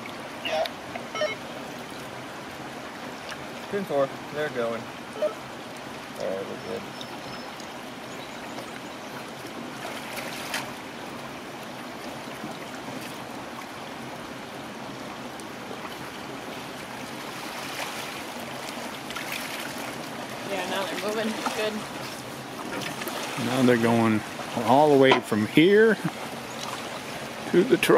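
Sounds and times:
flowing water: 0.0s - 27.9s
nets splashing in water: 17.0s - 25.4s.

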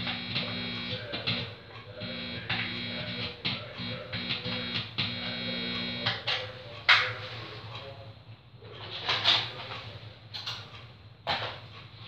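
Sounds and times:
guitar amplifier humming: 0.0s - 6.4s.

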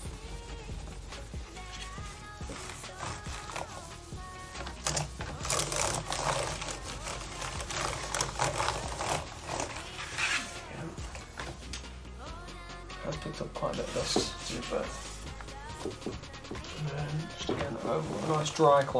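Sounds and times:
wipe rubbing on laptop keyboard: 0.0s - 11.5s, 16.8s - 18.9s
background music: 0.0s - 18.9s.

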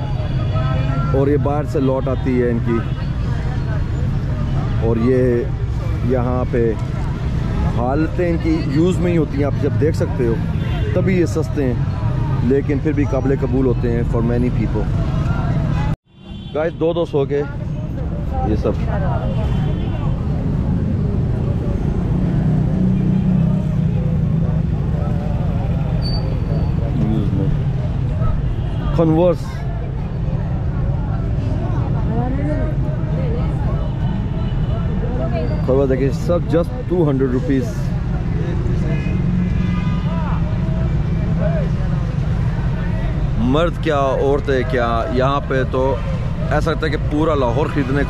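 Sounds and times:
distant voices of shoppers: 0.0s - 48.0s
low traffic rumble: 0.0s - 48.0s
people talking: 26.8s - 27.6s.

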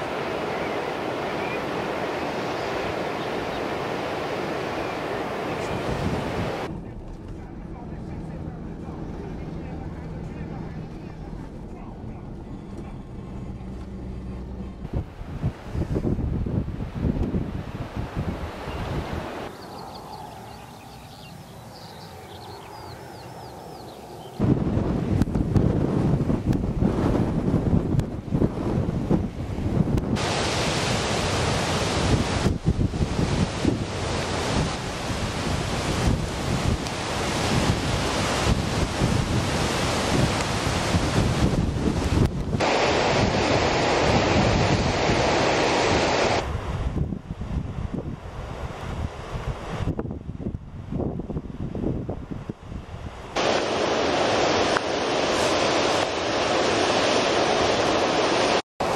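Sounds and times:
strong wind buffeting microphone: 0.0s - 7.1s, 7.7s - 58.9s.

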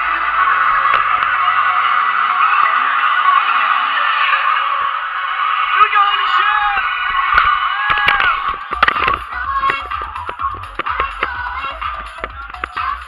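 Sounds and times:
people whooping: 0.0s - 9.2s
crowd talking and shouting: 0.0s - 13.0s.

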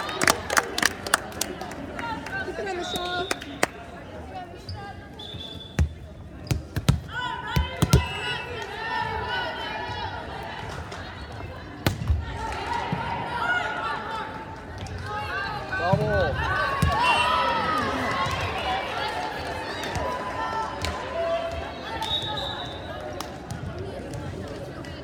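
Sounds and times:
shouts echoing in a hall: 0.0s - 5.5s, 7.0s - 25.0s.

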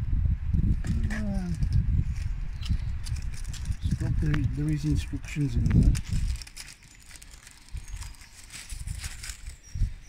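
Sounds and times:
plastic bag rustling: 1.2s - 10.0s.

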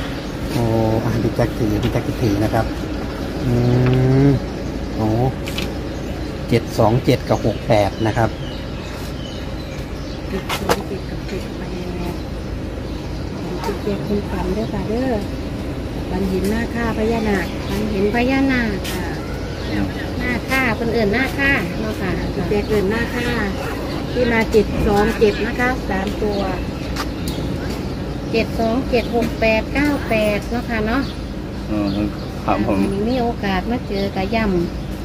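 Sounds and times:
low background rumble: 0.0s - 35.0s
person speaking: 3.4s - 5.4s.

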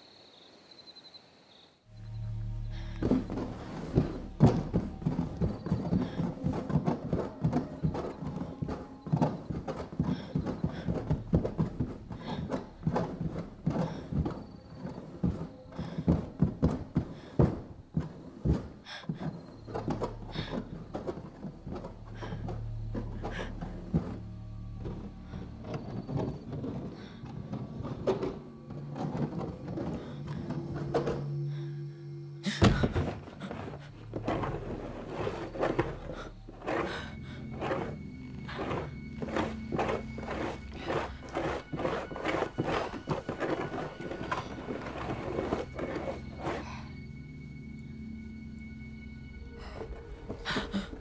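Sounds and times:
low drone: 1.9s - 18.2s, 18.9s - 51.0s
irregular clicking and knocking: 2.1s - 31.8s, 32.4s - 51.0s.

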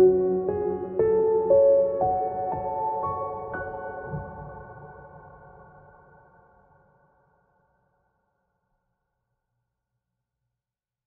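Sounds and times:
soft piano music: 0.0s - 6.3s.

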